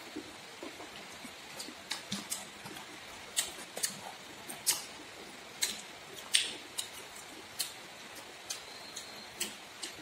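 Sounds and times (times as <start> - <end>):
chewing and lip smacks: 0.1 - 5.0, 5.6 - 10.0.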